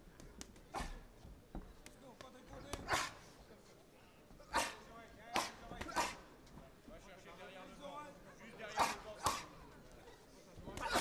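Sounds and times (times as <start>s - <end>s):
sharp bark-like shout: 2.9s - 3.2s, 4.5s - 4.8s, 5.4s - 6.2s, 10.8s - 11.0s.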